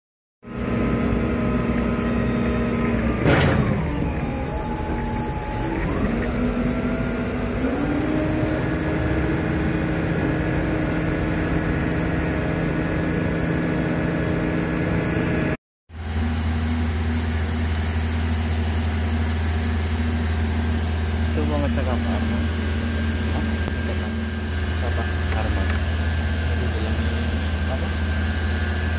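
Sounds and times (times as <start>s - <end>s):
diesel engine running: 0.4s - 28.9s.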